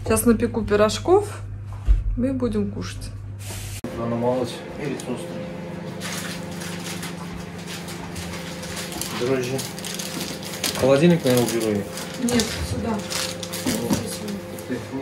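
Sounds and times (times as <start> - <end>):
steady machine hum: 0.0 - 15.0
rustling and handling noises: 5.8 - 15.0.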